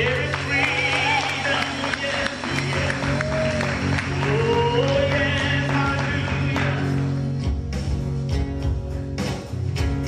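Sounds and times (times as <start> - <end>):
acoustic guitars strummed: 0.0 - 10.0
keyboard and bass low notes: 0.0 - 10.0.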